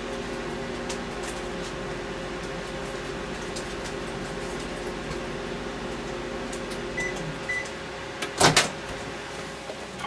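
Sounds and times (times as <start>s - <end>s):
microwave oven humming: 0.0s - 10.0s.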